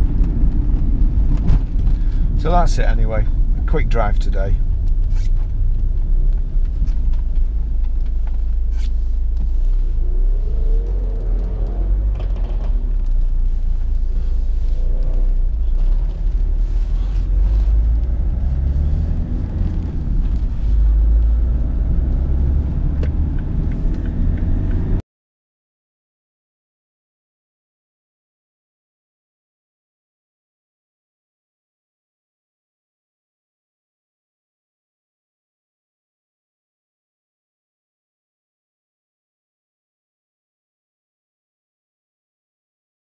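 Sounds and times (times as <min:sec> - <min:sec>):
diesel engine rumble: 0:00.0 - 0:25.0
road noise: 0:00.0 - 0:25.0.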